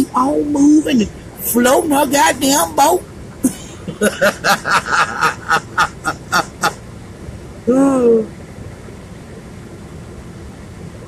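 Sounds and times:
woman laughing: 0:02.8 - 0:06.8.

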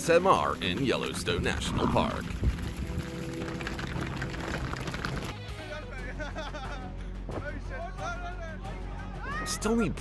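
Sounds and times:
hooves clattering on asphalt: 0:00.2 - 0:05.4.

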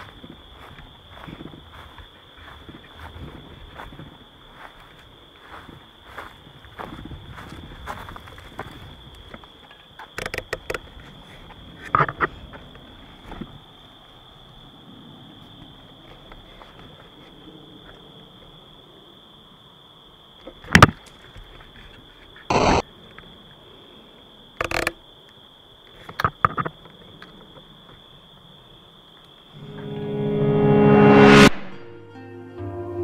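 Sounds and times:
footsteps on rough ground: 0:00.0 - 0:13.7
crickets chirping: 0:00.0 - 0:31.5.

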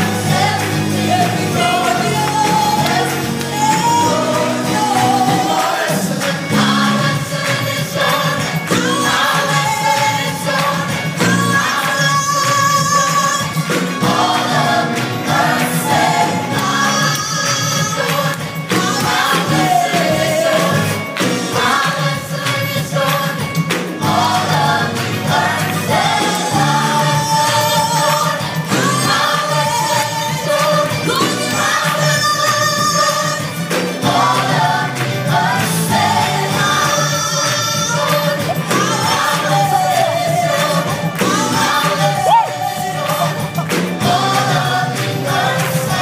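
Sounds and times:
gospel choir singing: 0:00.0 - 0:46.0
live band playing: 0:00.0 - 0:46.0.

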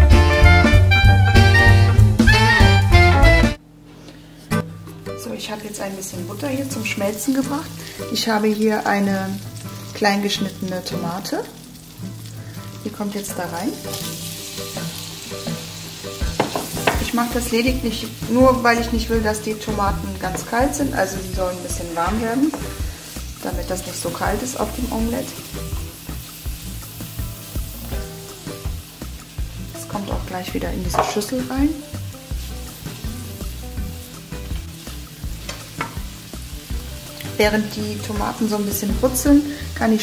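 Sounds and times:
tomato sizzling in frying pan: 0:04.6 - 0:40.0
spatula knocking on pan: 0:16.2 - 0:17.2, 0:20.3 - 0:20.8, 0:22.0 - 0:22.8, 0:30.1 - 0:31.4, 0:35.4 - 0:36.2.

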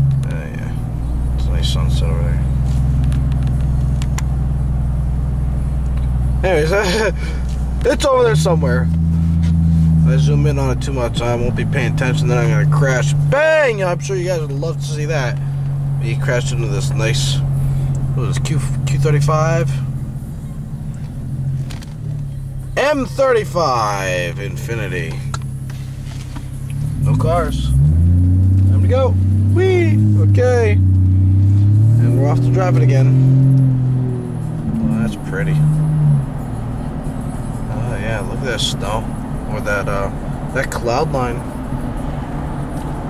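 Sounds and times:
truck engine and road rumble: 0:00.0 - 0:43.0.

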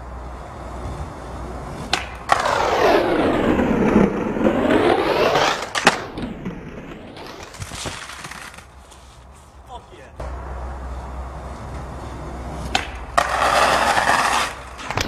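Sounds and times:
skateboard rolling on pavement: 0:00.0 - 0:15.0
skateboard grinding on concrete ledge: 0:00.6 - 0:08.7, 0:11.4 - 0:15.0
skateboard pop and clack: 0:01.8 - 0:02.7, 0:05.1 - 0:06.6, 0:12.6 - 0:15.0.

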